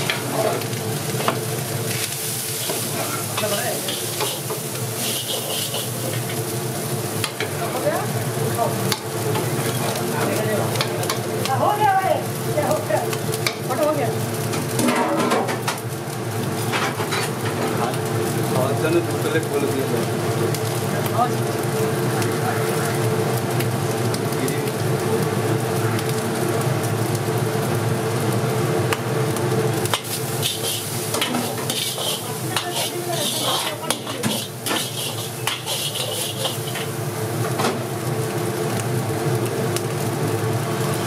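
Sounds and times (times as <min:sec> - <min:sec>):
rice sizzling in pan: 0:00.0 - 0:41.0
ladle scraping metal pan: 0:30.0 - 0:36.9.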